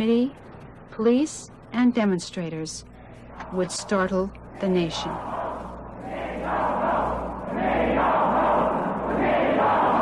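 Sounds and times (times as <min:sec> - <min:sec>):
film soundtrack low hum: 0:00.0 - 0:10.0
crowd yelling and shouting: 0:04.9 - 0:10.0.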